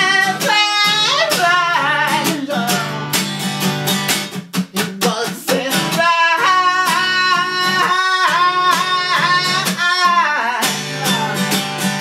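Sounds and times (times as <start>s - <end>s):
man singing long notes: 0.0s - 2.9s, 4.8s - 11.5s
strummed acoustic guitar: 0.0s - 12.0s.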